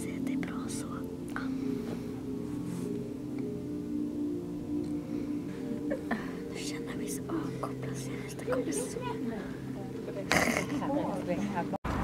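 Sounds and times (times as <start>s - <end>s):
whispered speech: 0.0s - 1.5s.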